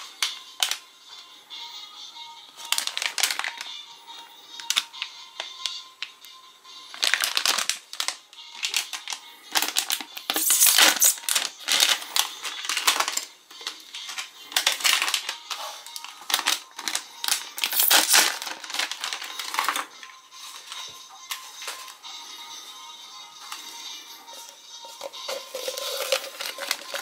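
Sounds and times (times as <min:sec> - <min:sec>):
plastic packaging crinkling: 0:00.0 - 0:00.8, 0:02.6 - 0:03.7, 0:06.9 - 0:22.0, 0:24.4 - 0:27.0
background music: 0:00.0 - 0:27.0.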